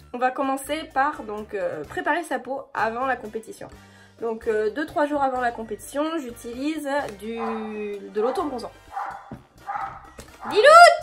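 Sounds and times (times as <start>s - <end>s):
woman calling: 7.1s - 9.1s, 10.4s - 11.0s
dog barking: 7.3s - 11.0s.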